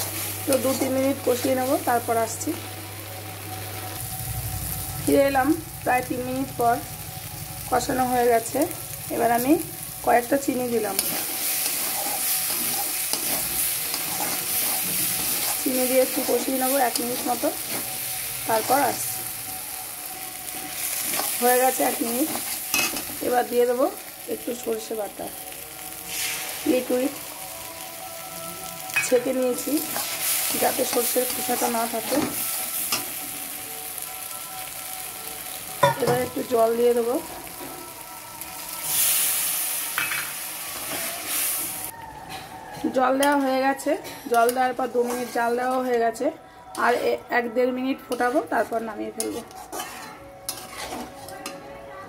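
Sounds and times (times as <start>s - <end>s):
prawns sizzling in masala: 0.0s - 52.0s
spatula scraping through paste: 49.2s - 51.3s.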